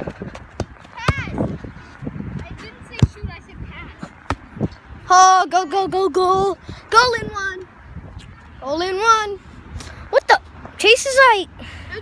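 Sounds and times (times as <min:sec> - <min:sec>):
child shouting: 0:01.0 - 0:01.4.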